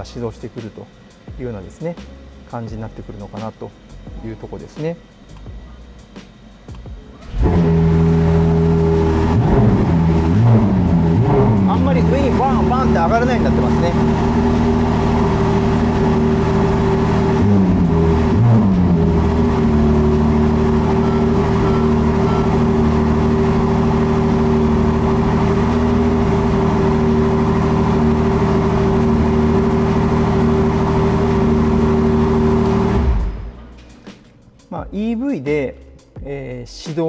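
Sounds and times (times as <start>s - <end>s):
car engine idling: 0.0s - 34.6s.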